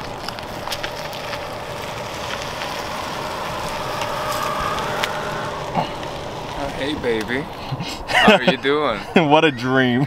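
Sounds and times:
faint electric whine: 0.0s - 9.1s
tyre hiss on road: 0.0s - 9.4s.

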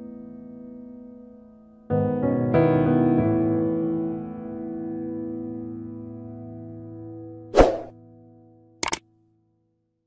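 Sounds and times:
piano music with held chords: 0.0s - 8.4s.

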